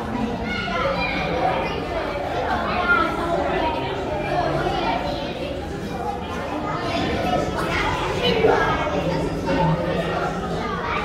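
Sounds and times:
children's voices: 0.0 - 11.0
indistinct chatter: 0.0 - 11.0.

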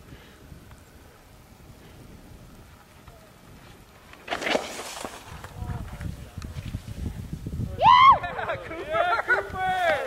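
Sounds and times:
wind rumble on microphone: 5.1 - 10.0
person whooping shout: 7.7 - 8.5.

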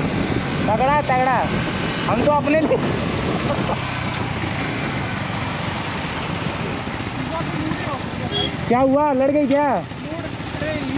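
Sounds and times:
motorcycle engines at low speed: 0.0 - 10.9
road noise: 0.0 - 10.9.

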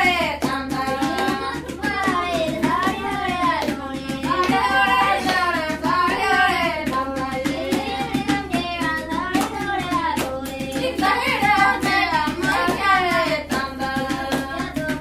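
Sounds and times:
sharp hand claps: 0.0 - 15.0
voices singing: 0.0 - 15.0.

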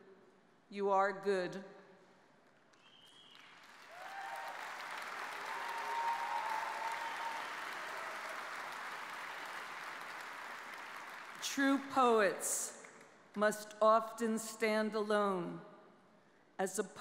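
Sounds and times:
audience applauding: 2.8 - 11.6.

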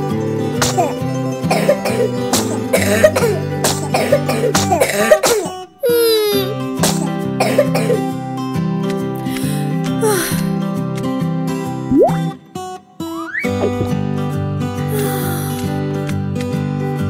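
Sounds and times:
light guitar music: 0.0 - 17.0
cartoon kittens coughing: 0.6 - 8.0, 14.9 - 15.7
falling whistle sound effect: 13.2 - 13.7.

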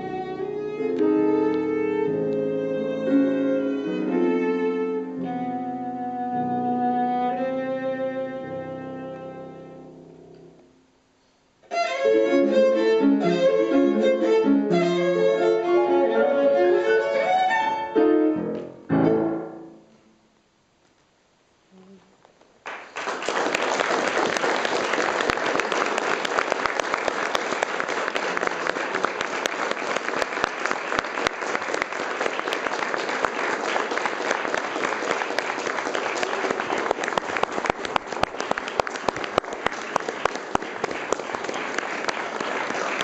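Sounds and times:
audience clapping: 22.6 - 43.0.

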